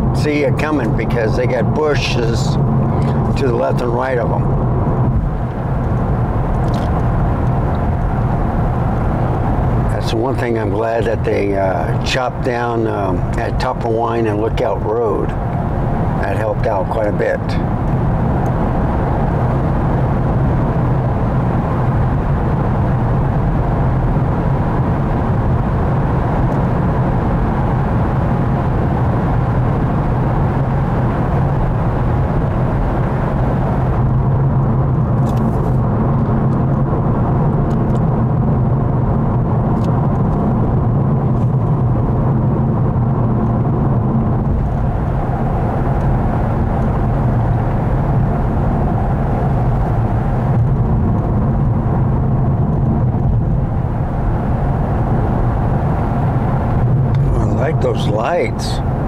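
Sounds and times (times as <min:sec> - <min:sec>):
car engine drone: 0:00.0 - 0:59.0.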